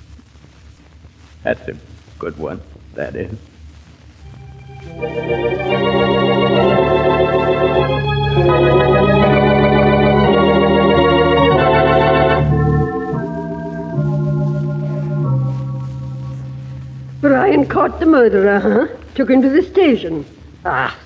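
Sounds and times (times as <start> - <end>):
organ chords: 4.2 - 18.9.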